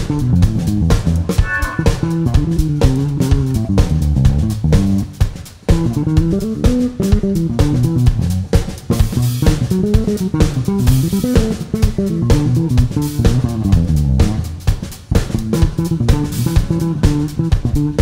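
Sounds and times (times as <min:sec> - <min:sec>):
drum kit: 0:00.0 - 0:18.0
electric bass line: 0:00.0 - 0:18.0
funk rock band playing: 0:00.0 - 0:18.0
person singing: 0:01.3 - 0:02.1.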